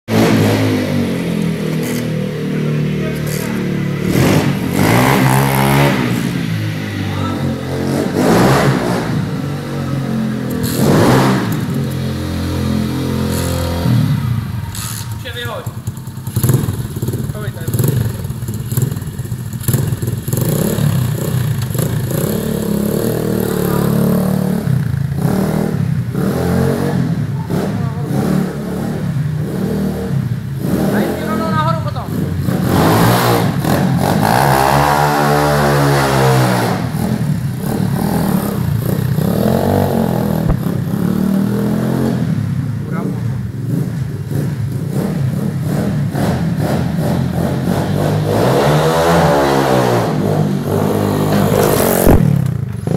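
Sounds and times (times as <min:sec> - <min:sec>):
dirt bike engines revving: 0:00.1 - 0:52.9.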